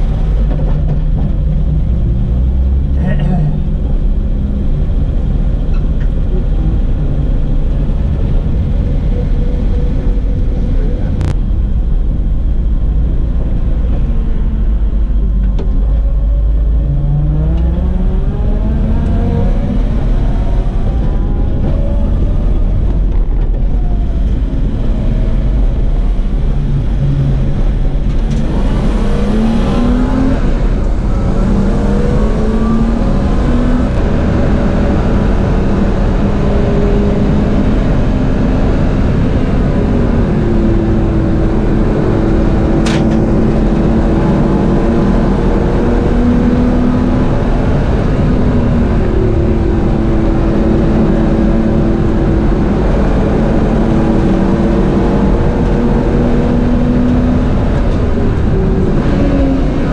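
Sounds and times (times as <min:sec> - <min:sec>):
car engine revving under load: 0:00.0 - 0:59.9.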